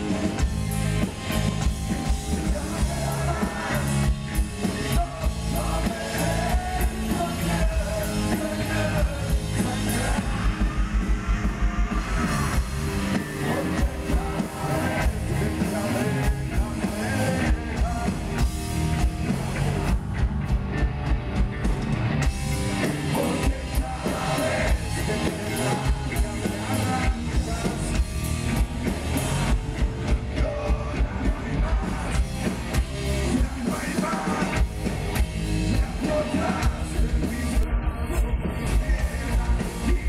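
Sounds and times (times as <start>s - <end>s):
fast low drum beats: 0.0s - 40.0s
live rock band playing: 0.0s - 40.0s.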